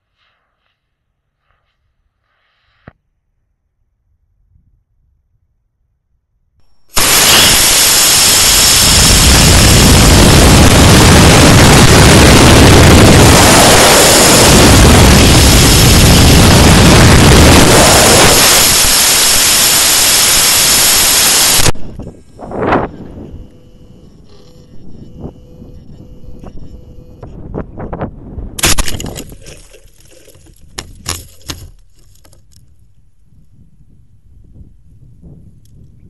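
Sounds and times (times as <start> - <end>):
rocket motor roaring: 6.8 - 27.2
air rushing past: 6.9 - 23.2.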